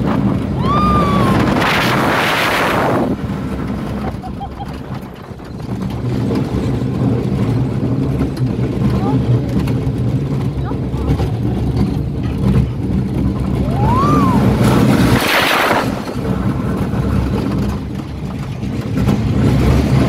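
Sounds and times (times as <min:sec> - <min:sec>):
rider whooping: 0:00.4 - 0:03.0, 0:03.7 - 0:05.7, 0:13.4 - 0:16.0.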